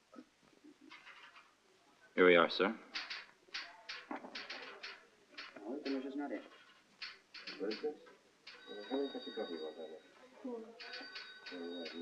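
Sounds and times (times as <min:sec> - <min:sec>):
quiet spoken dialogue: 0:01.6 - 0:12.0
steady high ringing tone: 0:08.5 - 0:10.2, 0:10.8 - 0:12.0.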